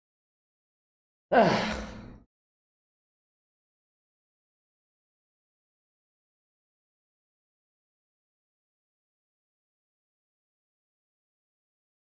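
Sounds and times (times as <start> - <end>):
man sighing: 1.3 - 2.1.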